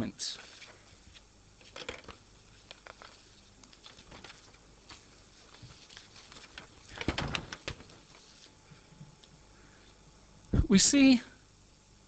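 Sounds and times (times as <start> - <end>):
paper sheets rustling: 0.3 - 8.6.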